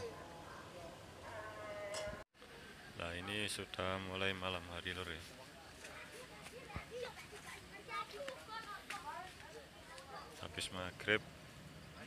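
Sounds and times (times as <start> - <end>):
people chattering: 0.0 - 11.2.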